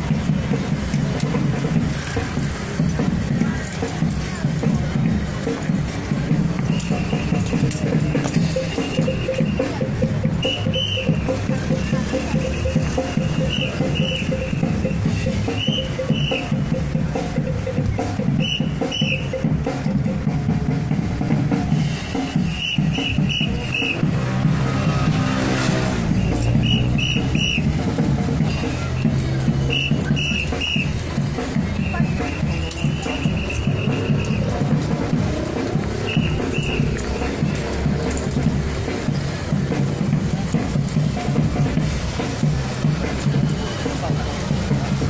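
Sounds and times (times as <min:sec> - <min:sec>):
band music with drums: 0:00.0 - 0:45.0.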